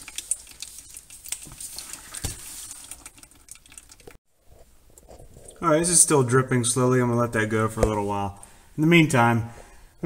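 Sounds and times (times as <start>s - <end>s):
oil stream splashing into container: 0.0s - 4.2s.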